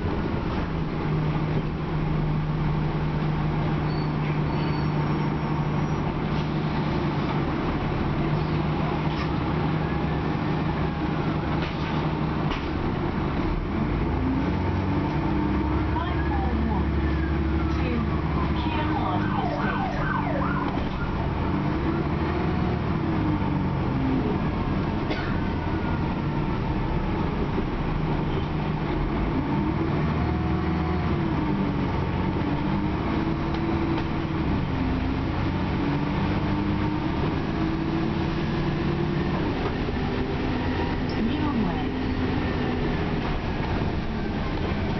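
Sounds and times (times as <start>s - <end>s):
bus engine revving: 0.0s - 44.9s.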